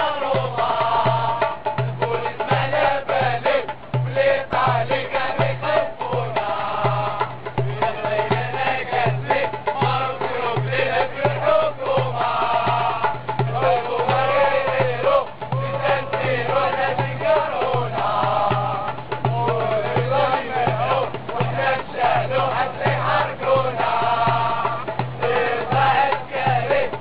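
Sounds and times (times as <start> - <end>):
crowd singing in unison: 0.0 - 27.0
repeating bass drum beat: 0.2 - 27.0.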